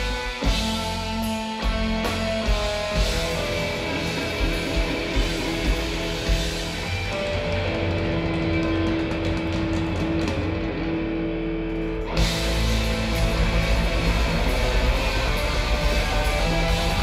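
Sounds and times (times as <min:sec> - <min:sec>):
rock band playing live: 0:00.0 - 0:17.0.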